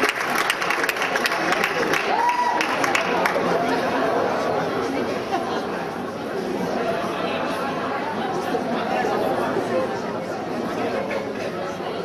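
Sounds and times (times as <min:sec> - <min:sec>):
applause: 0:00.0 - 0:04.1
crowd chattering: 0:00.0 - 0:12.0.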